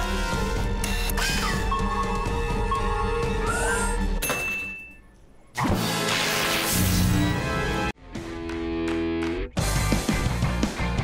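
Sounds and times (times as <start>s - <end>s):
rock music with electric guitar: 8.0s - 11.0s.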